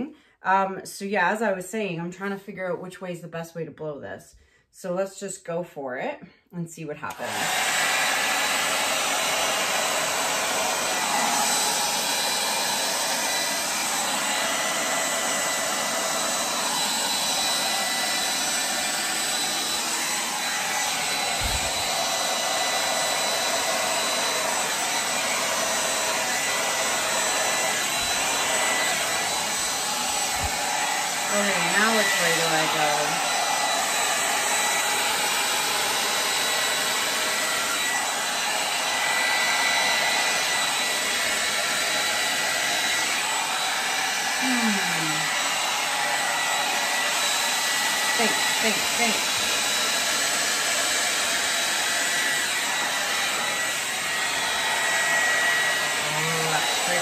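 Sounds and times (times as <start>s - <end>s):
hair dryer whining: 6.8s - 57.0s.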